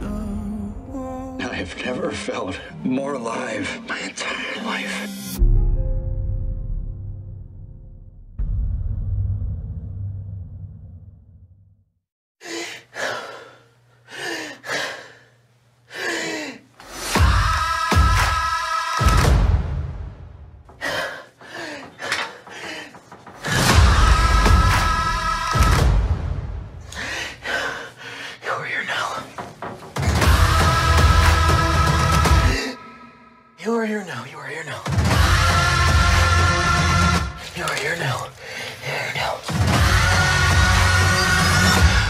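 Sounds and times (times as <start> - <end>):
man breathing heavily and groaning: 12.4 - 18.3, 20.7 - 25.6, 26.8 - 29.4, 37.4 - 39.8
man gasping for breath: 20.7 - 23.6.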